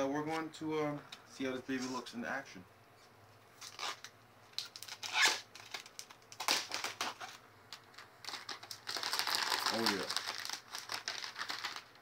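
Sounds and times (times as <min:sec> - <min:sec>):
plastic film peeling and crinkling: 0:03.6 - 0:12.0.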